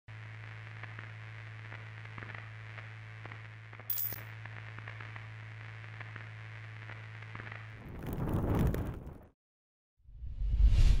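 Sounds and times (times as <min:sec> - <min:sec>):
low electrical hum: 0:00.1 - 0:07.8
faint crackles: 0:00.1 - 0:09.3.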